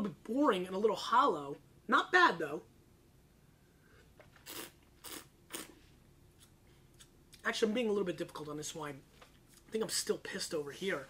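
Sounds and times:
wine tasting mouth sounds: 4.3 - 7.4.

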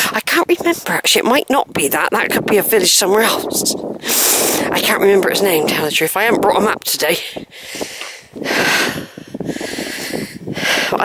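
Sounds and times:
person breathing hard: 4.0 - 4.7, 7.3 - 11.0.

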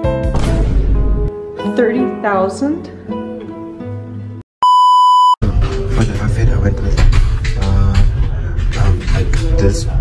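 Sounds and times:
guitar background music: 0.0 - 4.4
loud electronic bleep: 4.6 - 5.4.

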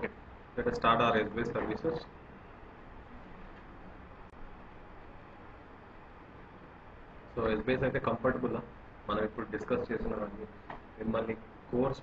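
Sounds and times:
faint microphone hiss: 0.0 - 12.0.

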